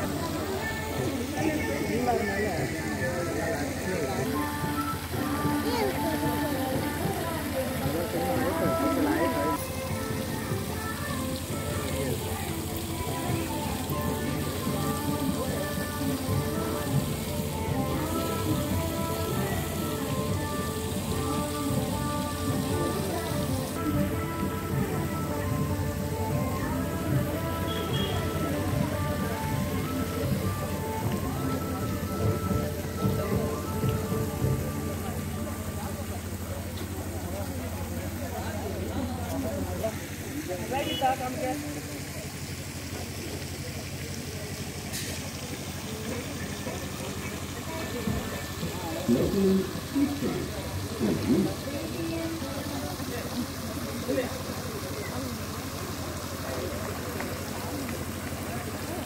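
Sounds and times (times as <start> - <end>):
music of held tones: 0.0 - 38.2
fountain splashing into pond: 0.0 - 59.0.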